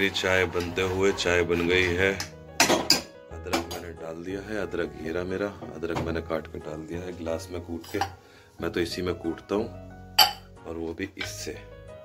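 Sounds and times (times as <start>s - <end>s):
spoon clinking against saucepan: 10.2s - 10.5s.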